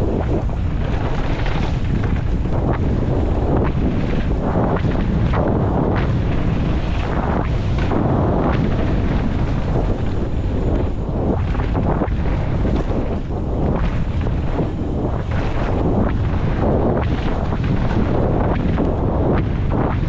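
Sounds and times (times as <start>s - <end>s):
tyres rumbling on dirt trail: 0.0s - 20.0s
wind buffeting microphone: 0.0s - 20.0s.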